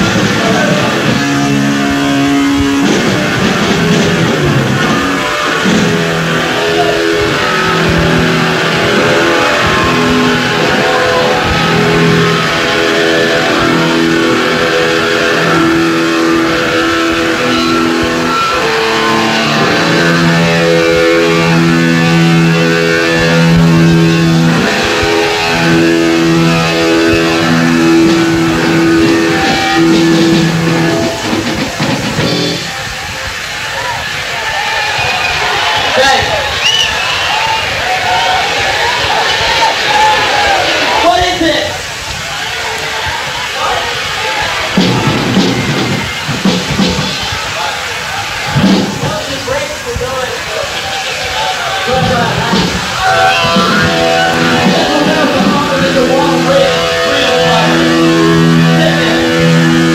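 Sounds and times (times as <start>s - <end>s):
punk band playing live: 0.0s - 42.0s, 43.2s - 59.9s
distorted electric guitar riff: 0.0s - 59.9s.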